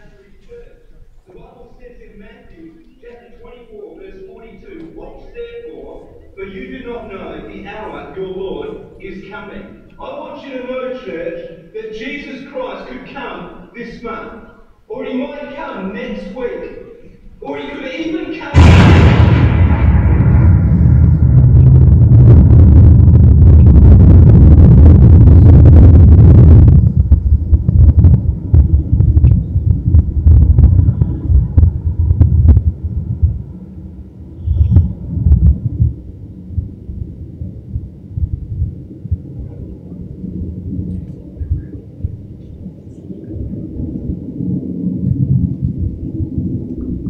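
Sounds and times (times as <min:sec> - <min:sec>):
uneven low rumbling: 0:18.1 - 0:47.0
deep thunder-like rumble: 0:18.5 - 0:47.0.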